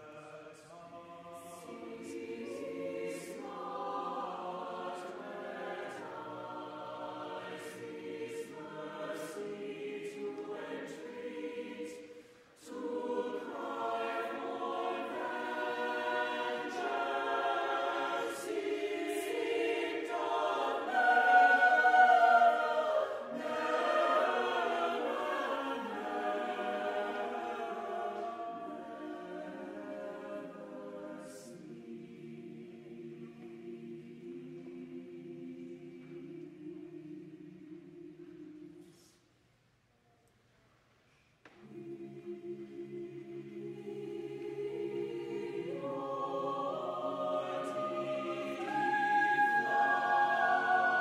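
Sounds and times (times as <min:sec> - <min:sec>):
church choir singing: 0:00.0 - 0:39.4, 0:41.4 - 0:51.0.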